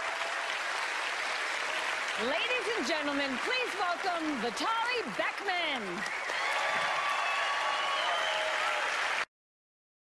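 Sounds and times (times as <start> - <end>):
audience applauding: 0.0 - 9.3.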